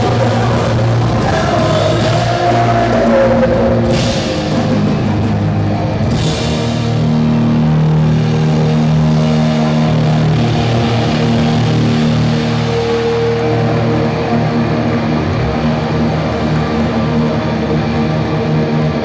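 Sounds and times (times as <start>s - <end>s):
bass chords ringing: 0.0s - 19.0s
distorted electric guitars: 0.0s - 19.0s
punk band playing loud: 0.0s - 19.0s.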